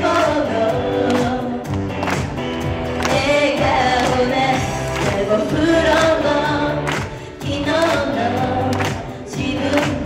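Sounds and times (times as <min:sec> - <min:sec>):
women singing together: 0:00.0 - 0:01.7, 0:03.1 - 0:10.0
pop backing track: 0:00.0 - 0:10.0.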